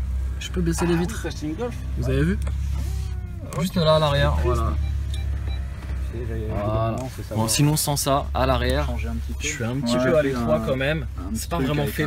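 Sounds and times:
low hum in car cabin: 0.0s - 12.0s
man speaking: 6.1s - 12.0s.

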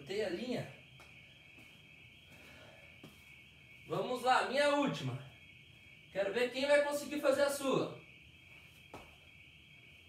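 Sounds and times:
man speaking: 0.0s - 0.8s, 3.9s - 5.4s, 6.1s - 8.0s
high-pitched hiss: 0.0s - 10.0s.

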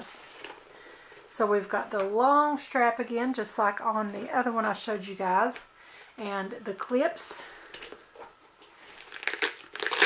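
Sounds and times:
hook-and-loop tearing open: 9.0s - 10.0s.

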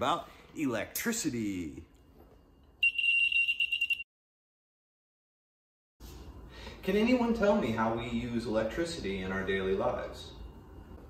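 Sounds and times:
high-pitched electronic buzzer: 2.8s - 4.0s.

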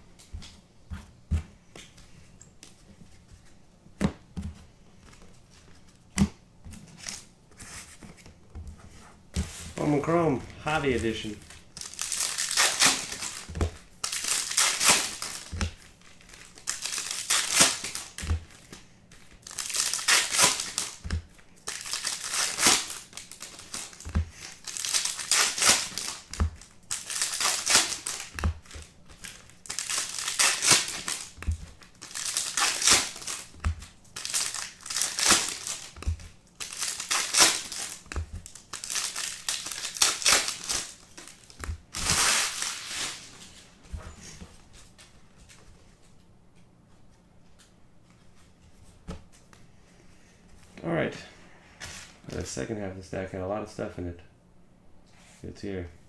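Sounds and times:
foil wrappers tearing and crinkling: 10.7s - 43.3s.

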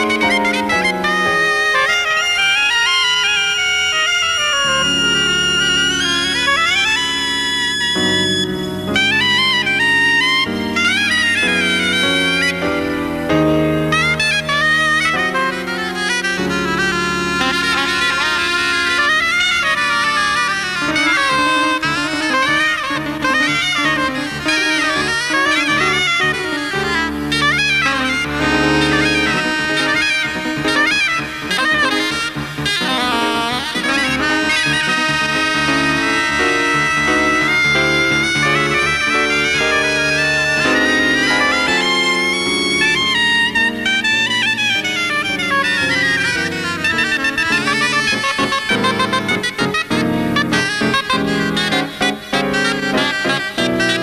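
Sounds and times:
low band accompaniment: 0.0s - 54.0s
soprano saxophones playing melody: 0.0s - 54.0s.

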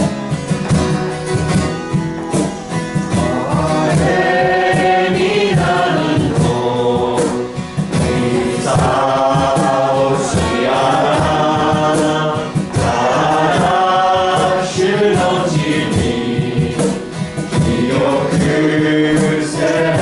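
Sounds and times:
acoustic guitar strumming: 0.0s - 20.0s
voices singing a hymn: 2.3s - 20.0s.

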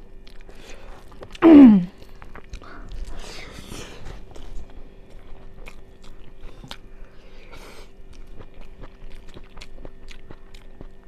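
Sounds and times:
person chewing food: 0.0s - 11.0s.

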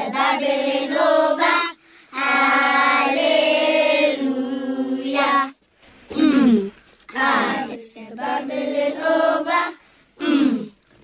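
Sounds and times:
children singing gospel song: 0.0s - 5.6s, 7.1s - 9.8s.

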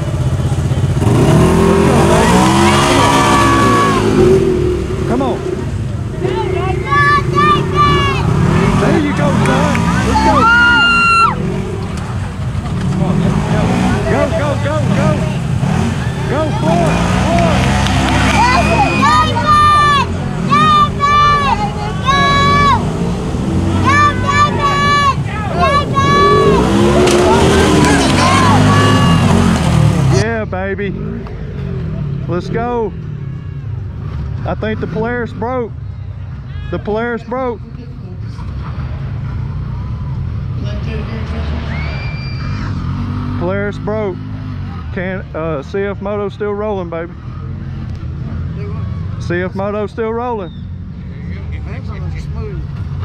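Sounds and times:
off-road engines revving: 0.0s - 53.0s.

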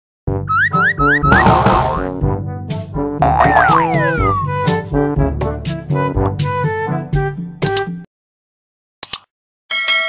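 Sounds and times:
rising boing sounds: 1.1s - 2.1s, 3.2s - 4.5s
bouncy jingle music: 3.2s - 4.8s.

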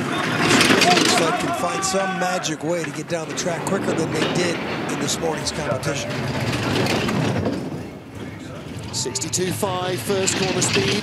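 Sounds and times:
bobsleigh runners rumbling on ice: 0.0s - 11.0s.

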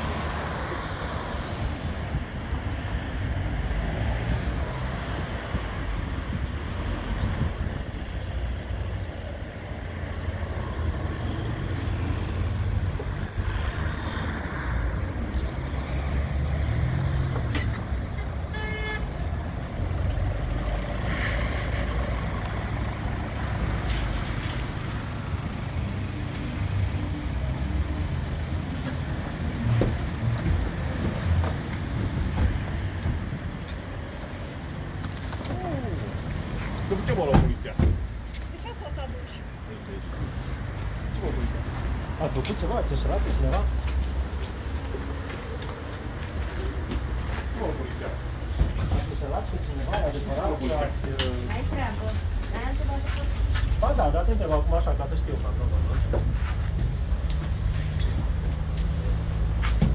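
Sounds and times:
traffic rumble: 0.0s - 59.9s
car horn toot: 18.5s - 19.1s.

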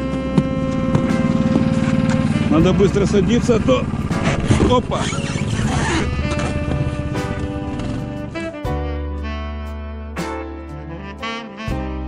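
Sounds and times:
background music: 0.0s - 12.0s
small engine idling: 0.3s - 8.3s.

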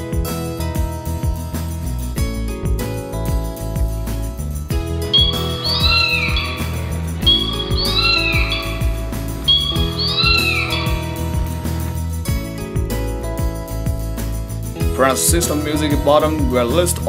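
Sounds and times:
background music: 0.0s - 17.0s
animal call sound effect: 5.2s - 11.2s.

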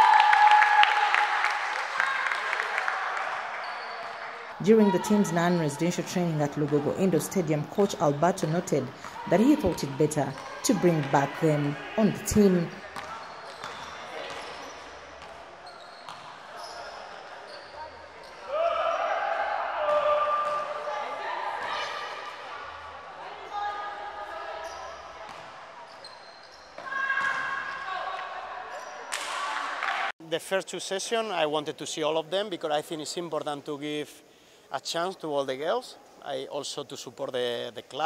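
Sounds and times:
long sneaker squeal: 3.5s - 4.4s, 13.1s - 15.0s, 15.6s - 19.2s, 25.8s - 28.0s
sneakers squeaking on court: 3.6s - 18.5s, 24.3s - 28.0s, 28.7s - 29.3s
basketball dribbling echoing: 4.8s - 16.3s.

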